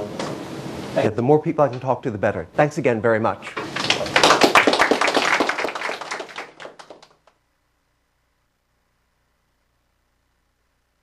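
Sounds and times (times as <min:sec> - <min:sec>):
audience applause: 0:03.7 - 0:07.2.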